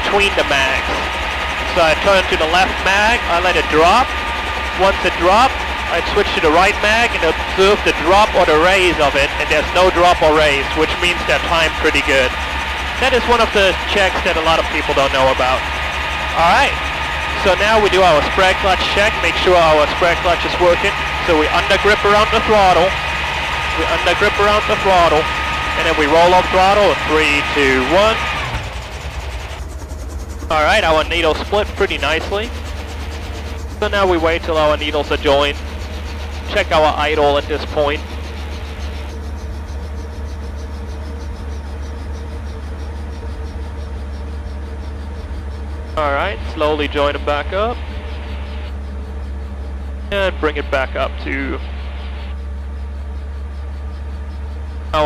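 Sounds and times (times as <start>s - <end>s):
piston engine drone winding down: 0.0s - 55.0s.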